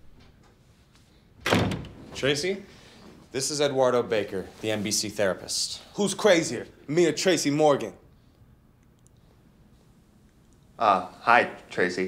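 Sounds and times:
door shutting with a bang: 1.4s - 2.1s.

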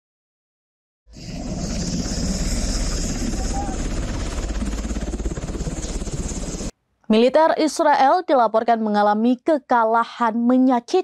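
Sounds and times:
helicopter rotor chopping: 1.1s - 6.7s
rotor-wash and turbine noise: 1.1s - 6.7s.

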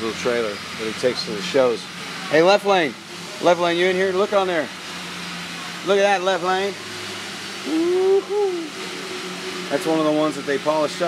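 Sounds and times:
steady background hum: 0.0s - 11.0s.

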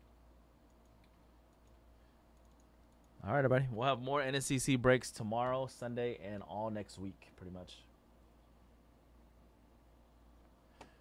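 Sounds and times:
faint computer clicks: 0.6s - 3.2s.

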